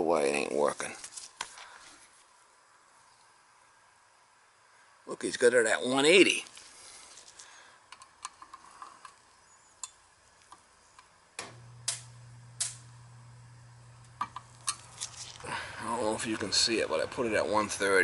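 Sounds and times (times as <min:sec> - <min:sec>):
fan humming: 0:11.1 - 0:18.0.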